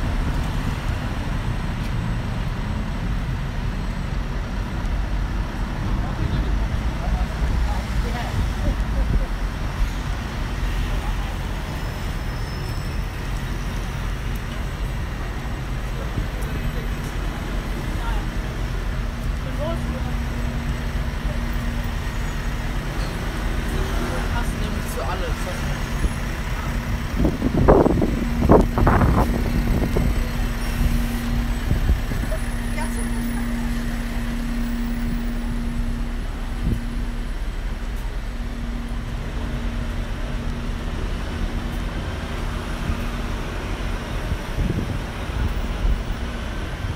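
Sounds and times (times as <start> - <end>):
rumble of passing cars and buses: 0.0 - 46.9
steady hum: 30.2 - 43.5.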